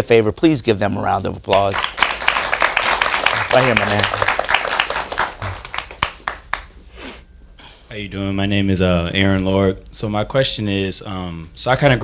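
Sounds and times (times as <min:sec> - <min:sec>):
studio audience applause: 0:01.5 - 0:06.8.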